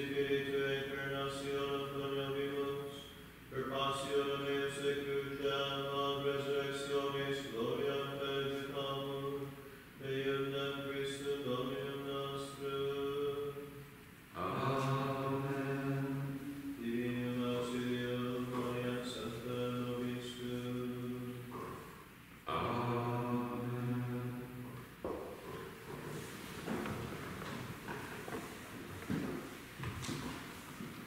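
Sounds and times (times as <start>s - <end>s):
men chanting a prayer: 0.0s - 13.7s, 14.4s - 24.8s.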